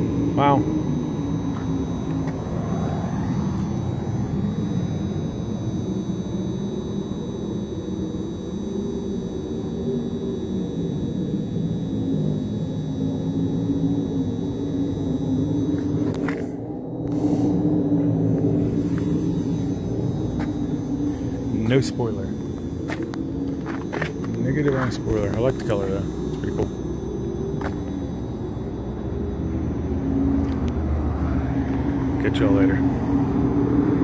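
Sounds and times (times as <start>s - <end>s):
low rumble with wavering hum: 0.0s - 34.0s.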